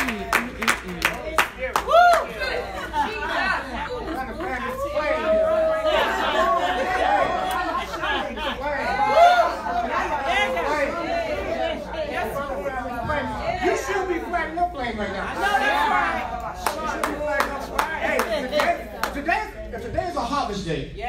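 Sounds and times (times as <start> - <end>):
congregation voices calling out: 0.0 - 19.3.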